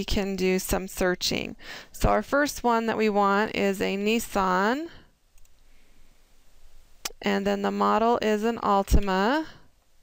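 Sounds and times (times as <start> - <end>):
low room hiss: 0.0 - 10.0
computer mouse clicks: 5.4 - 5.6.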